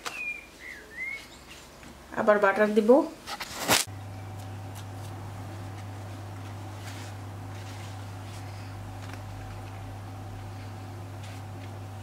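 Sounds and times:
bird chirping: 0.0 - 1.8.

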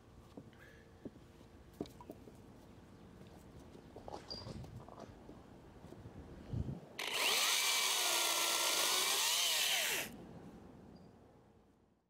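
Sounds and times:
chainsaw cutting wood: 7.0 - 10.1.

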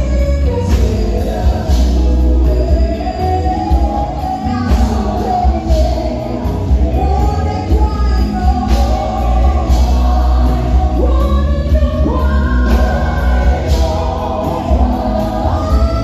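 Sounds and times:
backing singers harmonising: 0.0 - 16.0
band with drums and bass: 0.0 - 16.0
woman singing lead: 0.0 - 16.0.

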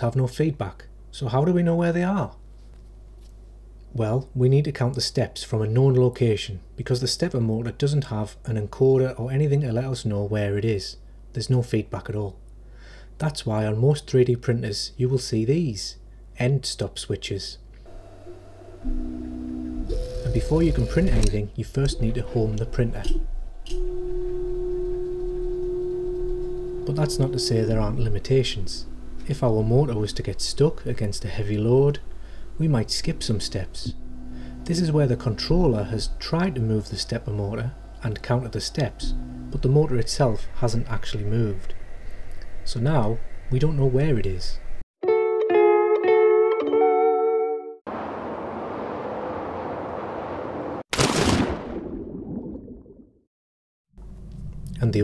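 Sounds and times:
stepper motor whine: 17.9 - 40.6
plucked string music sting: 18.2 - 31.8, 32.6 - 36.5, 39.0 - 39.8.

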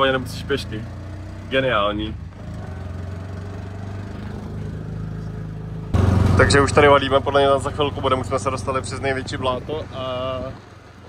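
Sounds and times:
auto rickshaw engine humming: 0.0 - 11.0.

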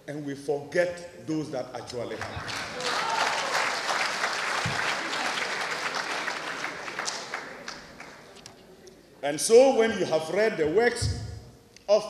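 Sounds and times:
audience applauding: 2.1 - 8.5.

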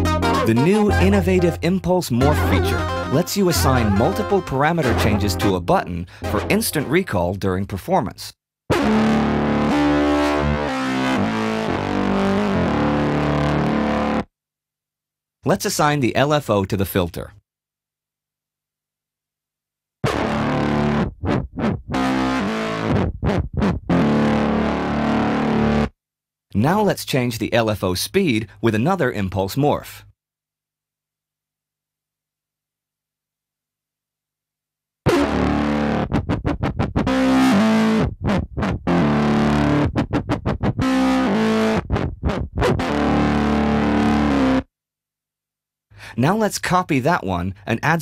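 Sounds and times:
synthesizer playing: 0.0 - 5.6.

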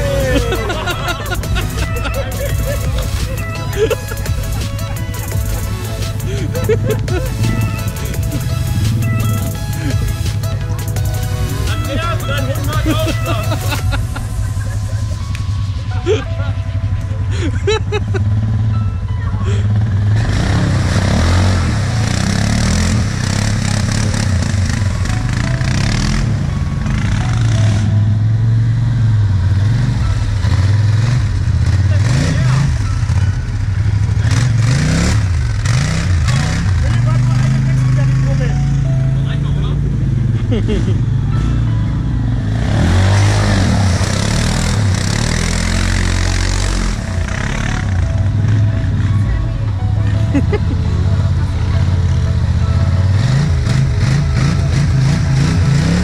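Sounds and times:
tyres churning through mud: 0.0 - 15.2, 19.5 - 26.2, 34.1 - 38.5, 42.6 - 49.0, 53.0 - 56.0
quad bike engines revving: 0.0 - 56.0.

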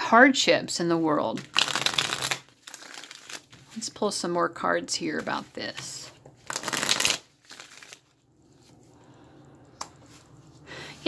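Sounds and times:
cards riffle shuffling: 1.4 - 3.7, 5.7 - 8.1
handling cards: 1.4 - 4.0, 5.0 - 8.9.

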